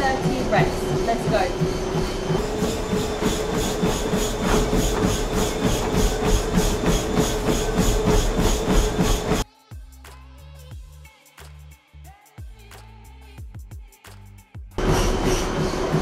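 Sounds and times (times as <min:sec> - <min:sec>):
running footfalls on treadmill: 0:00.0 - 0:09.4
treadmill motor whine: 0:00.0 - 0:09.4, 0:14.8 - 0:16.0.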